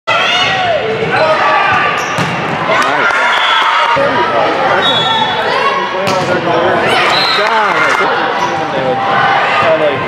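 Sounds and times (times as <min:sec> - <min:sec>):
volleyball hits: 0:00.5 - 0:03.7.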